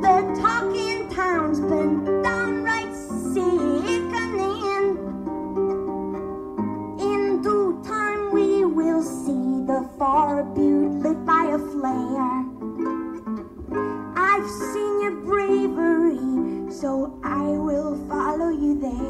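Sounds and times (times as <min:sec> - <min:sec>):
woman singing: 0:00.0 - 0:05.0, 0:07.0 - 0:12.6, 0:14.1 - 0:19.0
harp plucked notes and chords: 0:00.0 - 0:19.0.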